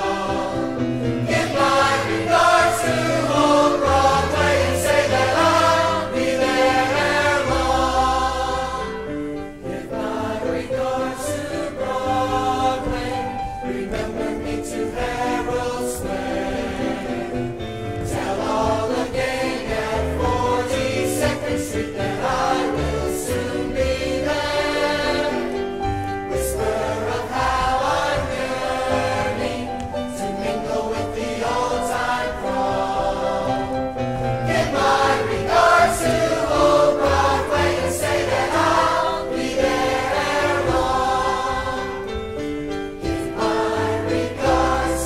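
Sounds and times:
musical accompaniment: 0:00.0 - 0:45.0.

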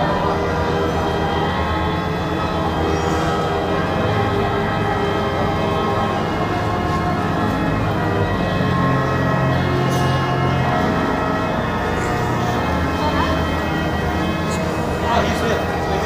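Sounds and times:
pipe organ playing chords: 0:00.0 - 0:16.0.

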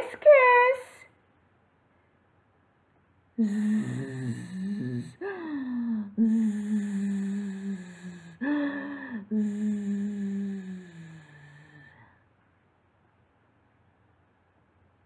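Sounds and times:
woman imitating snoring: 0:03.4 - 0:12.1.

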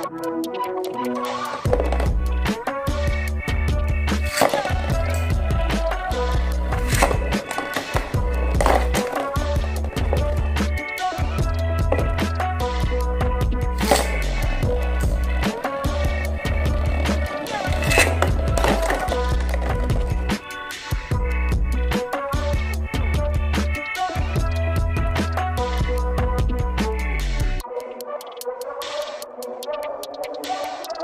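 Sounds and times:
music with bass beat: 0:01.7 - 0:07.4, 0:08.0 - 0:27.6
spinning tops clacking together: 0:04.2 - 0:05.3, 0:13.8 - 0:14.4, 0:17.5 - 0:19.9
spinning tops whirring: 0:13.8 - 0:15.4, 0:17.5 - 0:20.2.

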